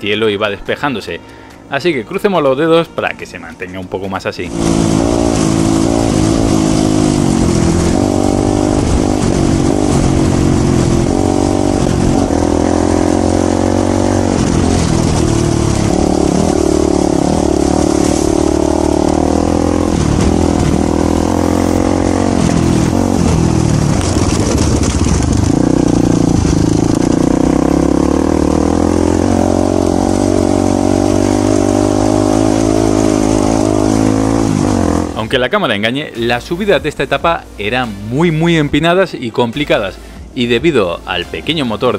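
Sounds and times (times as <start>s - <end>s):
motorcycle engine running: 4.2s - 35.6s.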